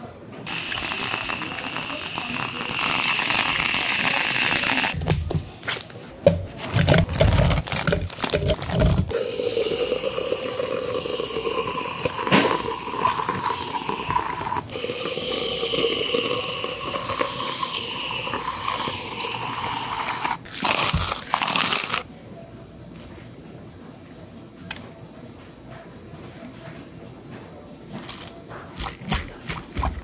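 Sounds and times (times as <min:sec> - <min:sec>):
gummy candies rattling into plastic cup: 0:06.8 - 0:09.1.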